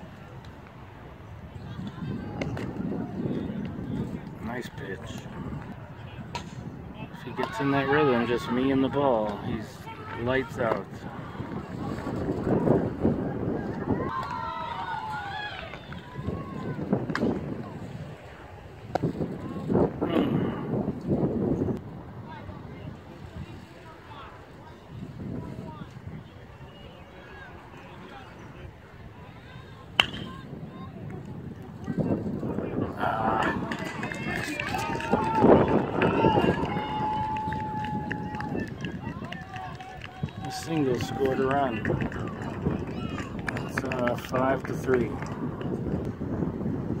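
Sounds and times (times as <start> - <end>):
faint outdoor background noise: 0.0 - 47.0.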